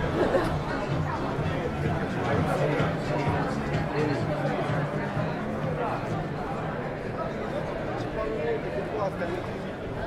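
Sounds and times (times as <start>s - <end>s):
chatter of many passers-by: 0.0s - 10.0s.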